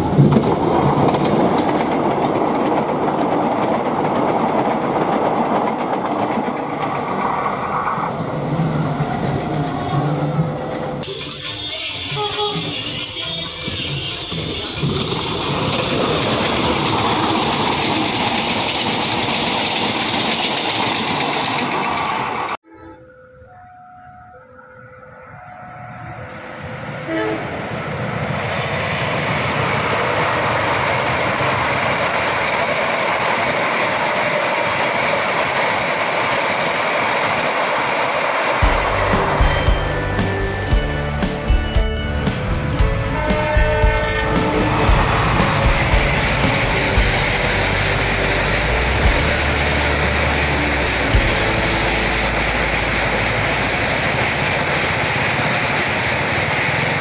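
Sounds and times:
diesel train running past: 0:00.0 - 0:57.0
passenger train passing: 0:00.0 - 0:57.0
music with a beat: 0:38.6 - 0:47.5.

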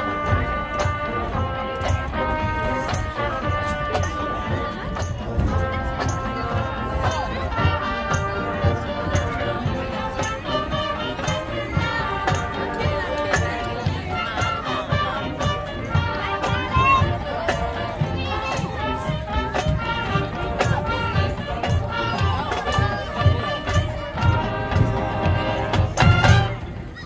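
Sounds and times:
drum beat: 0:00.0 - 0:27.0
horn chords: 0:00.0 - 0:27.0
spectators chattering: 0:00.0 - 0:27.0.

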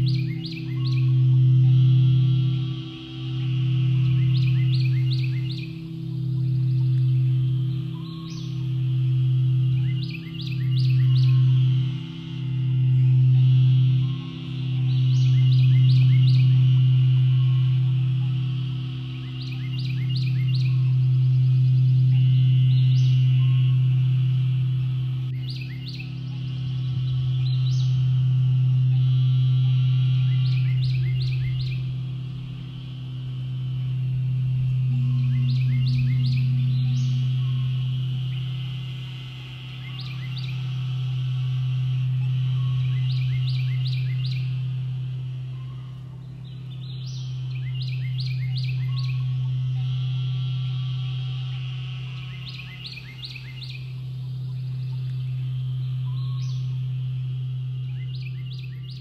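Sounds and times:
birds chirping: 0:00.0 - 0:59.0
singing bowl deep hum: 0:00.0 - 0:59.0.

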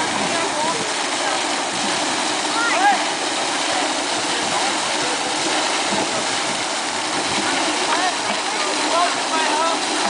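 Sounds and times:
fountain spraying into a pool: 0:00.0 - 0:10.0.

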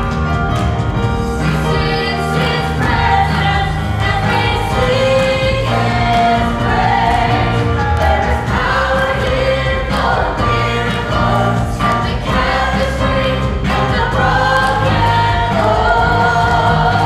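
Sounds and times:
drum kit: 0:00.0 - 0:17.0
keyboard: 0:00.0 - 0:17.0
group singing worship song: 0:01.4 - 0:17.0.

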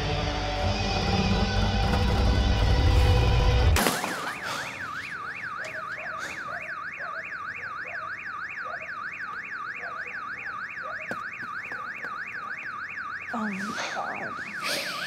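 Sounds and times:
electronic alarm siren wailing: 0:00.0 - 0:15.0.

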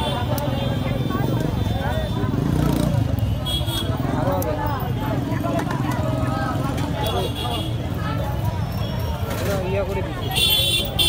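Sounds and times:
people talking: 0:00.0 - 0:11.0
traffic rumble: 0:00.0 - 0:11.0.

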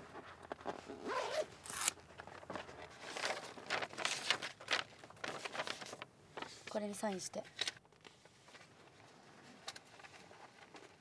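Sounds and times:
rustling: 0:00.0 - 0:06.8
bag zip: 0:00.8 - 0:02.0.

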